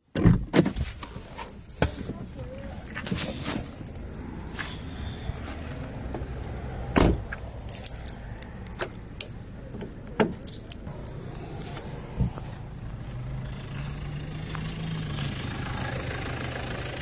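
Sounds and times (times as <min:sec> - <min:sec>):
car door shutting: 0:06.9 - 0:07.2
keys jangling: 0:07.6 - 0:10.8.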